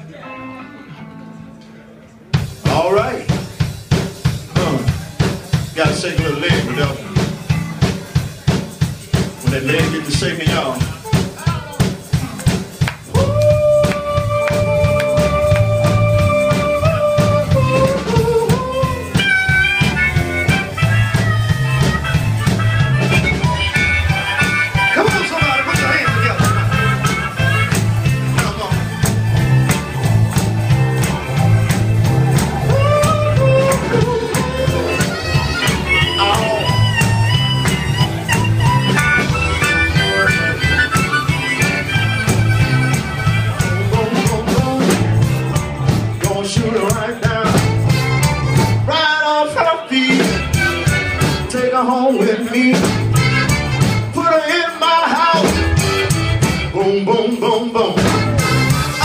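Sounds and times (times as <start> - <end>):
blues band playing: 0.0 - 59.0
drums: 2.2 - 59.0
electric bass: 12.4 - 49.0, 50.0 - 54.3, 55.2 - 59.0
harmonica solo: 13.3 - 44.4, 47.5 - 49.3, 49.9 - 51.5, 52.8 - 56.8, 58.0 - 59.0.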